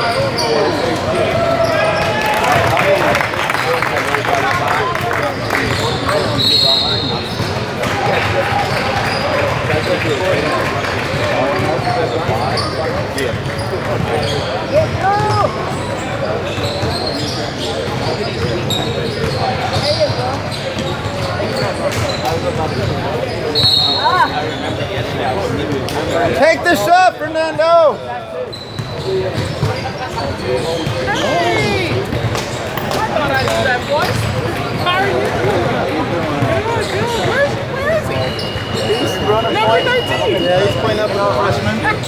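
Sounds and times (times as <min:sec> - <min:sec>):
sneakers squeaking: 0:00.0 - 0:03.7, 0:04.6 - 0:27.1, 0:27.8 - 0:42.0
people chattering: 0:00.0 - 0:42.0.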